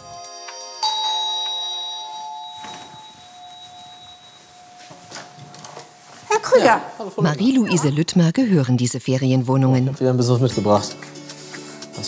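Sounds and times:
soft background music: 0.0s - 12.0s
doorbell chime: 0.3s - 6.3s.

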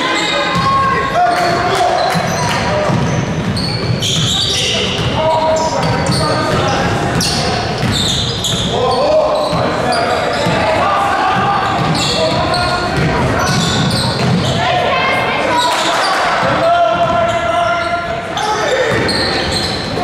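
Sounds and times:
sneakers squeaking: 0.0s - 20.0s.

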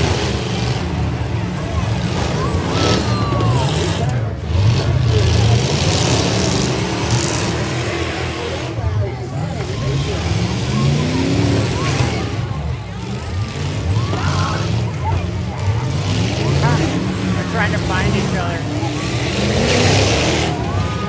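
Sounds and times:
truck engines revving: 0.0s - 21.0s
voices: 0.0s - 21.0s.

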